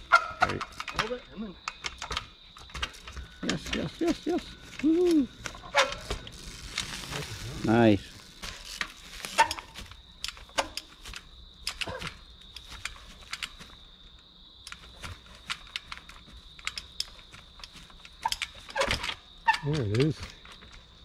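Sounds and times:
bike clicks and knocks: 0:00.0 - 0:07.1, 0:07.7 - 0:21.0
faint steady high tone: 0:03.1 - 0:05.6.

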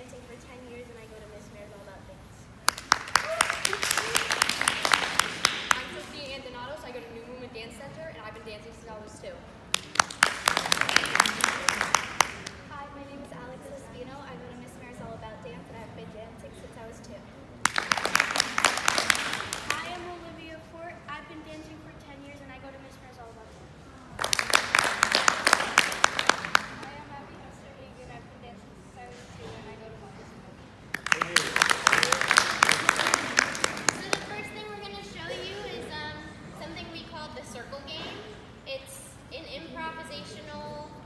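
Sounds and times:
small group clapping: 0:02.6 - 0:06.3, 0:09.7 - 0:12.7, 0:17.6 - 0:20.1, 0:24.2 - 0:27.0, 0:30.9 - 0:34.6
small audience applauding: 0:02.7 - 0:06.0, 0:09.7 - 0:12.6, 0:17.6 - 0:20.0, 0:24.2 - 0:26.9, 0:30.9 - 0:34.4
girl speaking: 0:34.0 - 0:41.0.

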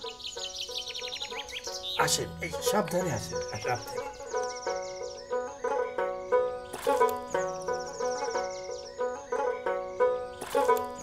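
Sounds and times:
bird chirping rapidly: 0:00.0 - 0:09.2
soft background music: 0:00.0 - 0:11.0.

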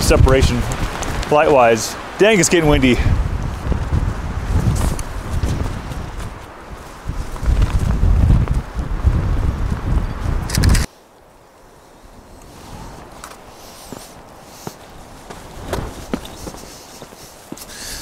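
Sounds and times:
wind gusting across microphone: 0:00.0 - 0:18.0
faint footsteps: 0:12.4 - 0:17.8.

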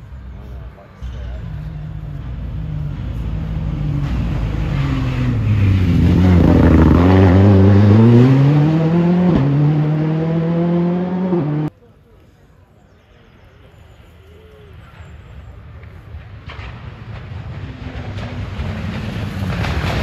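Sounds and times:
rally car engine passing: 0:01.0 - 0:11.7, 0:16.2 - 0:20.0.

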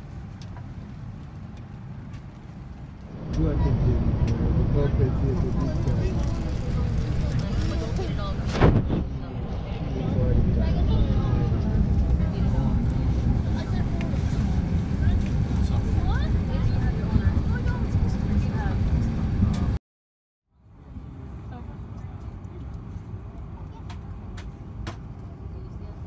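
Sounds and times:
cabin low rumble: 0:03.0 - 0:19.8
passengers talking: 0:03.2 - 0:19.8, 0:20.8 - 0:26.0.

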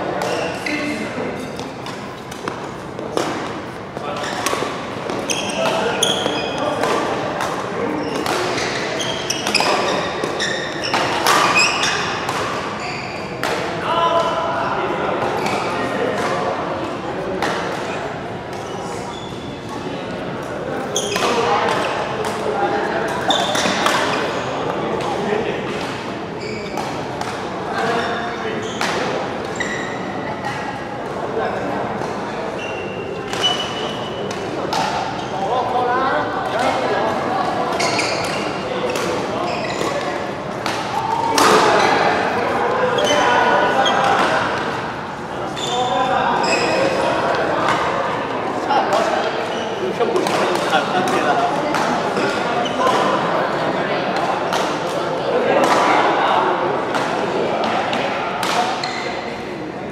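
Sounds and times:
shoes squeaking on court: 0:00.2 - 0:13.4, 0:20.8 - 0:22.1, 0:23.2 - 0:24.7, 0:26.4 - 0:27.0, 0:27.8 - 0:30.5, 0:32.5 - 0:35.5, 0:37.4 - 0:44.6, 0:45.5 - 0:47.9, 0:49.2 - 0:51.3, 0:58.6 - 0:59.4
racket hitting shuttlecock: 0:01.6 - 0:12.8, 0:13.4 - 0:13.7, 0:21.2 - 0:22.4, 0:33.2 - 0:35.2, 0:37.7 - 0:42.1, 0:50.2 - 0:53.0.

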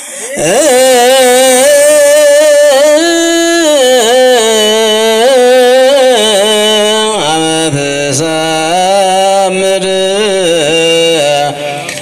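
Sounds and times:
person chanting long notes: 0:00.0 - 0:12.0.

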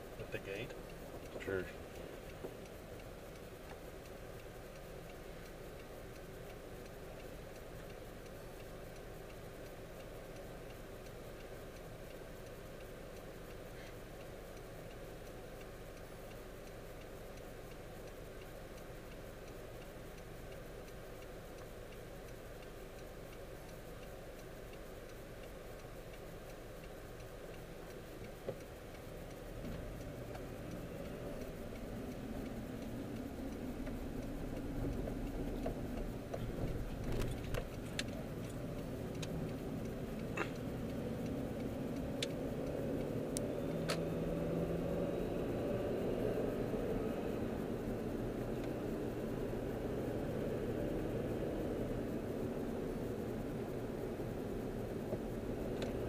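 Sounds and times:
car engine idling: 0:00.0 - 0:45.2, 0:45.8 - 0:56.0
road noise: 0:00.0 - 0:56.0
sharp clicks: 0:00.2 - 0:44.5, 0:54.8 - 0:56.0.

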